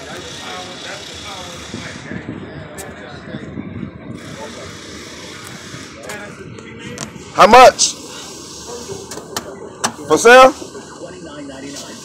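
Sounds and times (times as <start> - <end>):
indistinct voices talking: 0.0 - 12.0
street noise: 0.0 - 12.0.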